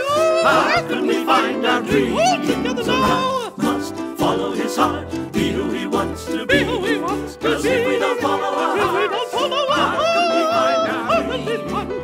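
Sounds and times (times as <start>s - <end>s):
keyboard accompaniment: 0.0s - 12.0s.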